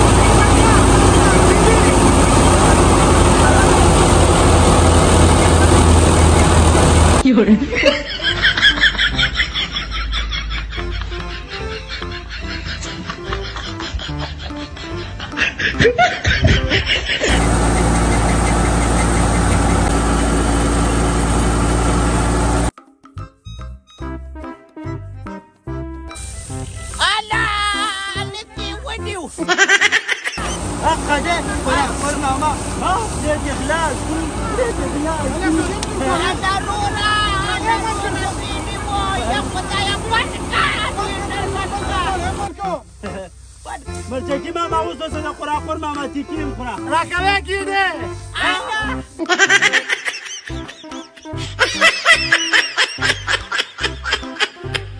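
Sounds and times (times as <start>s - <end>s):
threshing machine running: 0.0s - 7.2s, 16.2s - 22.7s, 30.4s - 43.2s
background music: 0.0s - 17.3s, 22.7s - 30.1s, 30.7s - 42.9s, 43.8s - 54.9s
people's excited voices: 32.8s - 42.7s.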